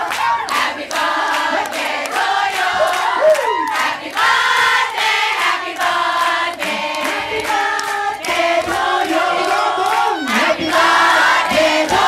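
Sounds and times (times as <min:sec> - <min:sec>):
group singing a birthday song: 0:00.0 - 0:12.0.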